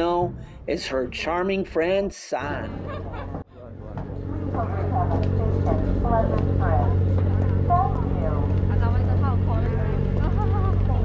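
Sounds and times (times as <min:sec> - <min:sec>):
people talking: 0:00.0 - 0:02.9, 0:03.6 - 0:11.0
low engine hum: 0:02.8 - 0:11.0.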